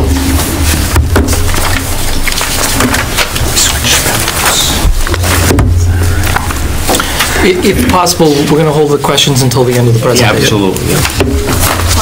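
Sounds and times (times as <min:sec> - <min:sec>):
steady low hum: 0:00.0 - 0:09.0
paper shuffling: 0:00.0 - 0:12.0.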